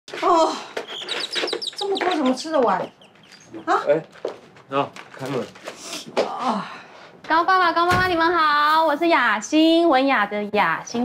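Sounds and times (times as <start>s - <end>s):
rapid high bird-like chirps: 0.8s - 3.7s.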